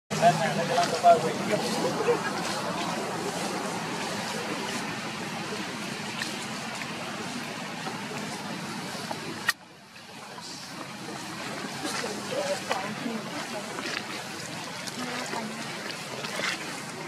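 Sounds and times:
outdoor background noise: 0.1 - 17.0.

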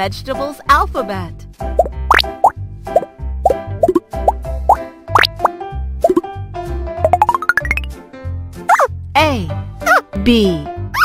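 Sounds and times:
children's music with bass beat: 0.7 - 6.3, 7.0 - 8.0
cartoon pop blips: 1.8 - 6.2, 7.0 - 7.9, 8.7 - 8.9
cartoon upward glide: 7.1 - 7.9.

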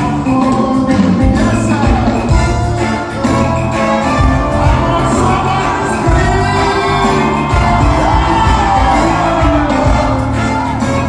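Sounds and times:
gospel band playing: 0.0 - 11.0
steady bass beat: 4.1 - 10.6
congregation shouting and whooping: 4.4 - 11.0
singing: 4.4 - 11.0.

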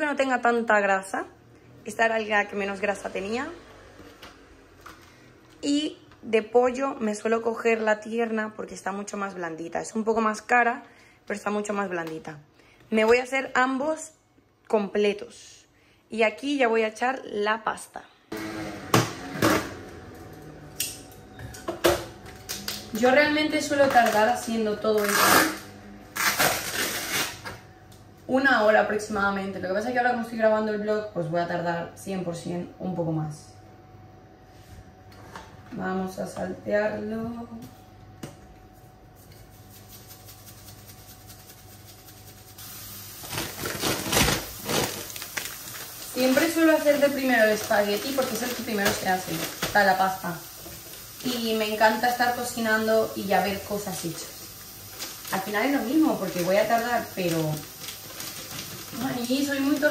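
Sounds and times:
food sizzling in frying pan: 39.5 - 59.9
spice jar rattling: 39.6 - 42.9.

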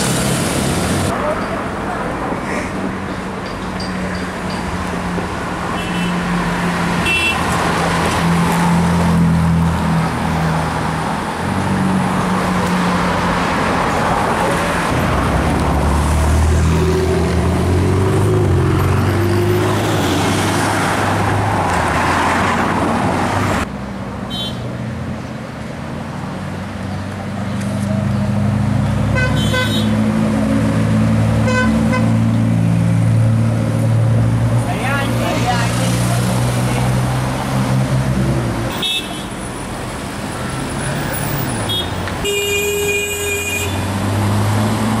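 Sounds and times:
city traffic: 0.0 - 45.0.

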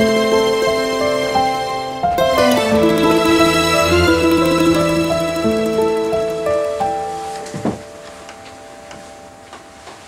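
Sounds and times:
soft background music: 0.0 - 10.0
clock ticking: 2.2 - 7.0.

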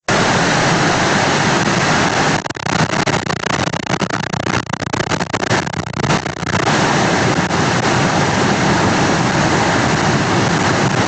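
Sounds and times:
loud hiss of noise: 0.0 - 11.0
rapid crackle: 0.0 - 11.0.

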